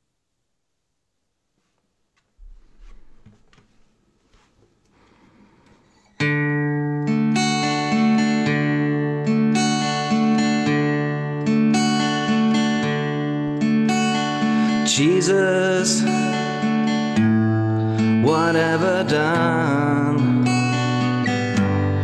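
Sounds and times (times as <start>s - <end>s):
acoustic guitar chords: 6.1s - 22.0s.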